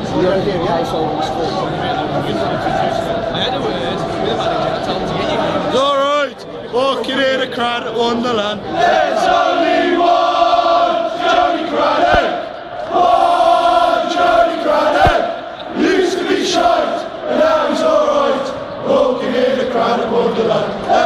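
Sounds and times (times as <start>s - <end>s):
crowd chanting in unison: 2.2s - 5.8s, 8.6s - 21.0s.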